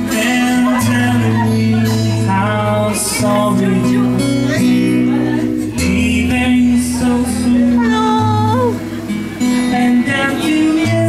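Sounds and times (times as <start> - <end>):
person singing: 0.0 - 8.9, 9.6 - 11.0
acoustic guitar music: 0.0 - 11.0
low bass notes: 0.0 - 11.0.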